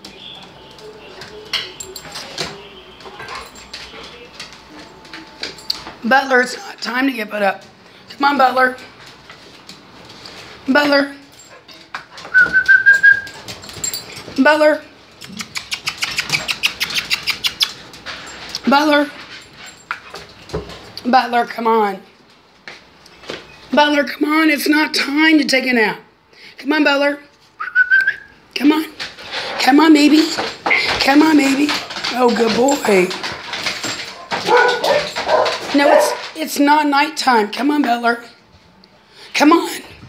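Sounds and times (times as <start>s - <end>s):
claws clicking on hardwood floor: 15.2s - 18.2s, 30.0s - 36.4s
dog whining bark: 34.4s - 36.2s.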